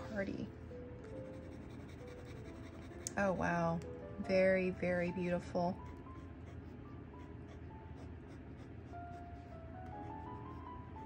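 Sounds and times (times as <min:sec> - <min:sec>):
soft background music: 0:00.0 - 0:11.0
dip pen nib scratching paper: 0:01.0 - 0:03.4, 0:05.7 - 0:10.7.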